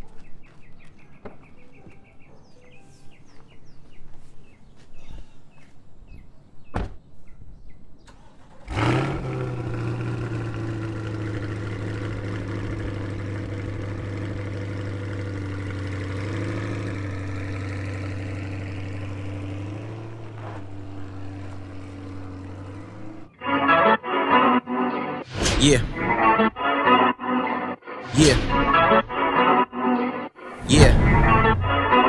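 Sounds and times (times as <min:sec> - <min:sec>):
car engine starting and idling: 0:08.0 - 0:23.3.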